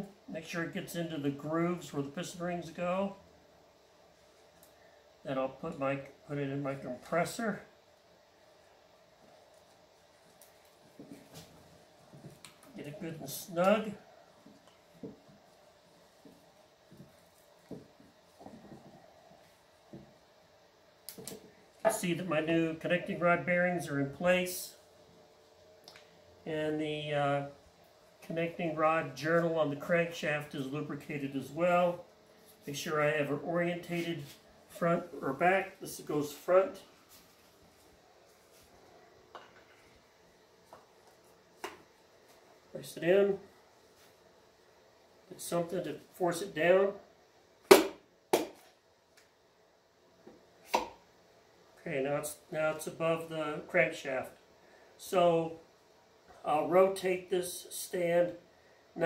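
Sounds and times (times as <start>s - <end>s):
faint steady hum: 0.0s - 59.0s.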